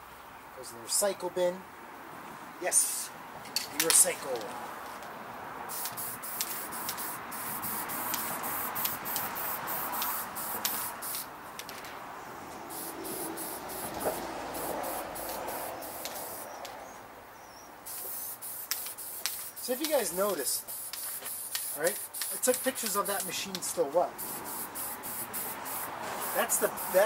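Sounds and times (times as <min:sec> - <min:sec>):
spray paint can hissing: 0:05.7 - 0:11.3, 0:12.7 - 0:16.8, 0:17.8 - 0:27.0.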